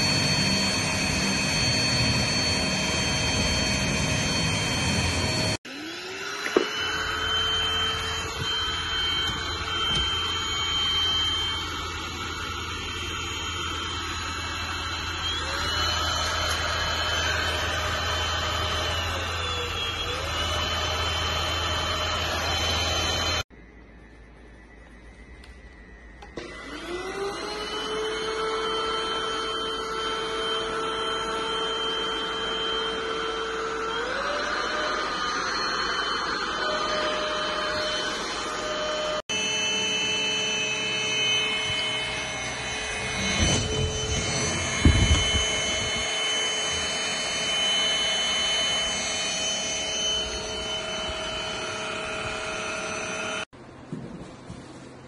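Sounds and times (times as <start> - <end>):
stick vacuum cleaner whining: 0.0 - 23.5, 25.2 - 53.5.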